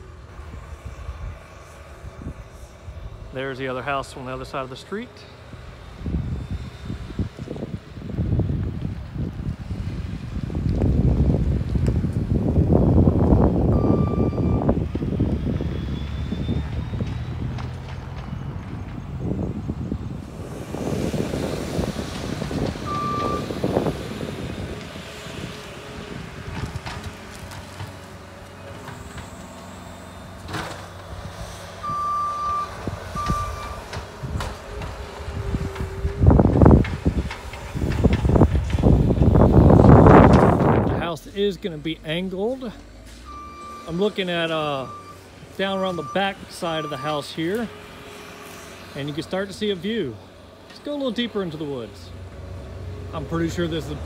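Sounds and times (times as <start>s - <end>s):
loader engine running: 0.0s - 54.0s
backup alarm beeps: 13.7s - 14.7s, 22.9s - 23.5s, 31.8s - 33.8s, 43.3s - 44.0s, 44.8s - 45.2s
heavy low rumbling: 31.1s - 46.2s.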